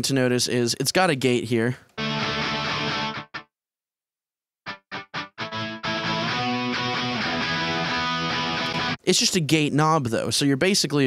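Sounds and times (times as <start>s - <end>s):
distorted electric guitar chords: 2.0s - 3.4s, 4.7s - 9.0s.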